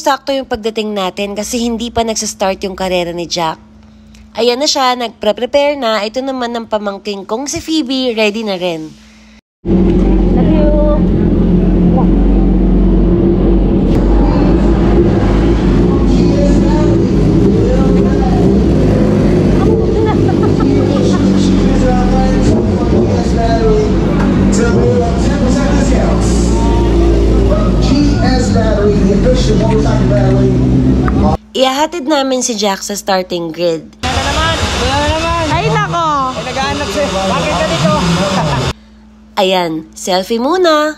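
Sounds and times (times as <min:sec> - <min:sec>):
motorcycle engines running: 0:09.6 - 0:31.4, 0:34.0 - 0:38.8.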